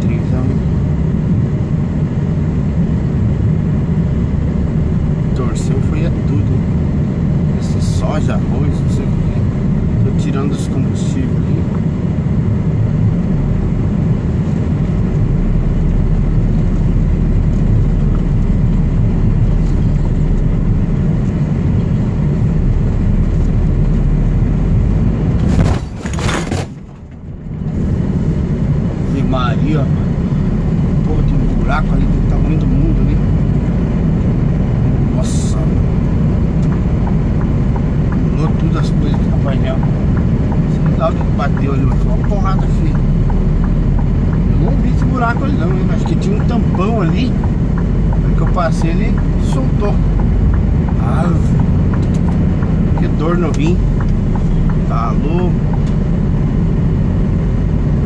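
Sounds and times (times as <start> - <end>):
truck engine and road rumble: 0.0 - 58.0.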